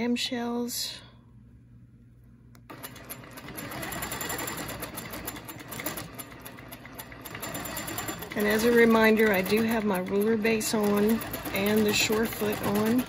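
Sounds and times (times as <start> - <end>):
quilting machine stitching: 2.7 - 13.0.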